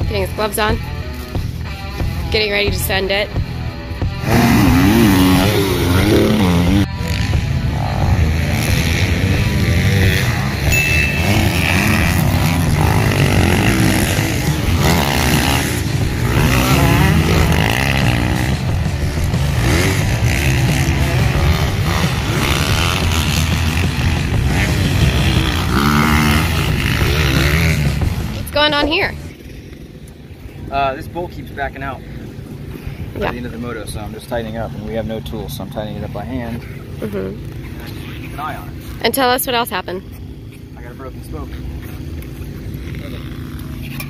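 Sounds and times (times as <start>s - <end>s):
music playing: 0.0s - 29.3s
dirt bike engines revving: 0.0s - 44.0s.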